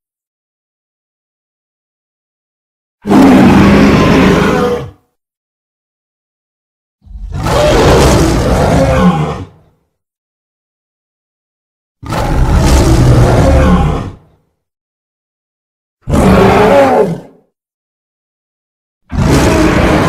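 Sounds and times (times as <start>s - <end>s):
giant ape roars: 3.0s - 5.1s, 7.0s - 9.6s, 12.0s - 14.3s, 16.0s - 17.4s, 19.1s - 20.0s.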